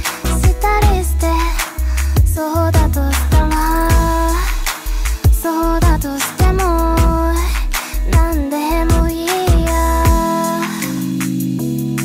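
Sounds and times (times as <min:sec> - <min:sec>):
woman singing: 0:00.0 - 0:11.3
drum beat and bass: 0:00.0 - 0:12.0.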